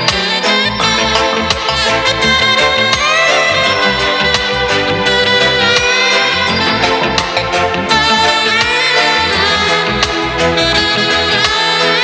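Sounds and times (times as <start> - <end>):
reggae drums and bass: 0.0 - 12.0
saxophone melody: 0.0 - 12.0.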